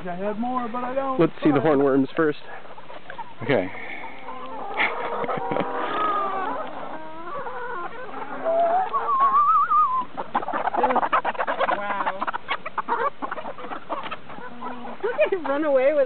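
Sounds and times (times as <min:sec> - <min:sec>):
hens clucking: 0:00.0 - 0:16.0
hen long wavering call: 0:03.8 - 0:12.0.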